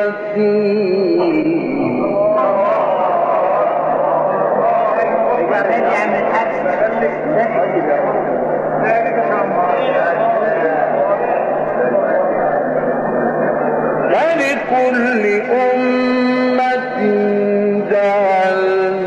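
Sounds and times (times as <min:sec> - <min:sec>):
man reciting melismatically: 0:00.0 - 0:08.0, 0:14.0 - 0:19.0.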